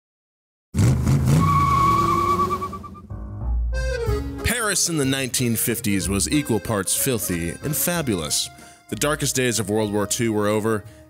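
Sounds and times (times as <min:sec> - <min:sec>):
tires squealing: 0:00.8 - 0:03.1
car engine revving: 0:00.8 - 0:03.4.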